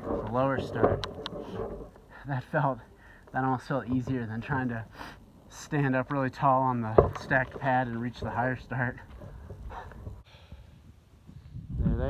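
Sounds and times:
person breathing: 2.1s - 3.3s, 4.9s - 5.3s, 9.6s - 10.8s
wind rumbling on microphone: 6.9s - 12.0s.

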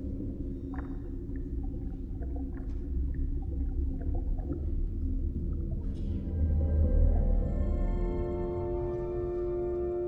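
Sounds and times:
deep underwater rumble: 0.0s - 9.2s.

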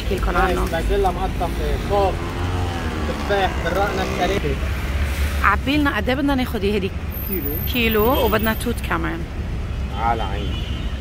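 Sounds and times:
people talking: 0.0s - 2.3s, 3.0s - 4.6s, 5.4s - 9.2s, 10.0s - 10.5s
street traffic rumble: 0.0s - 11.0s.

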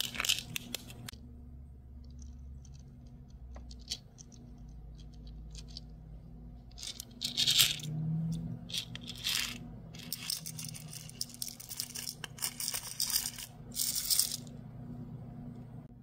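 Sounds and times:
rhinestones rattling in plastic tray: 0.0s - 0.7s, 2.1s - 5.9s, 6.7s - 8.0s, 8.6s - 14.5s
rhinestones clinking into plastic jar: 0.0s - 1.1s, 6.7s - 14.5s.

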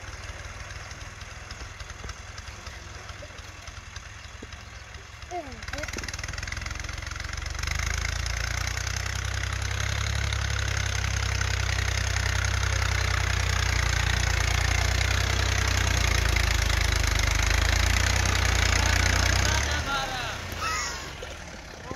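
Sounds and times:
tractor diesel engine under load: 0.0s - 21.9s.

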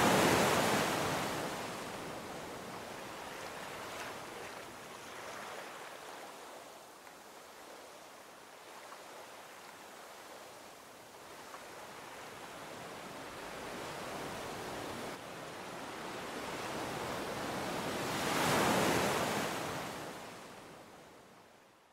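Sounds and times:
ocean waves washing: 0.0s - 6.8s.

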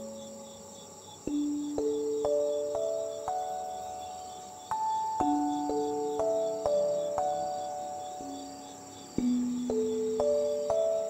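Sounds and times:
crickets chirping: 0.0s - 11.0s
slow soft background music: 0.0s - 11.0s.

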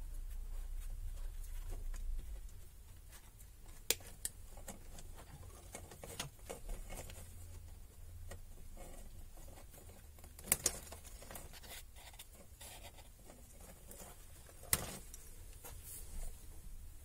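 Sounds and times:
faint low hum: 0.0s - 17.0s
rustling of electronic parts: 0.2s - 16.6s.

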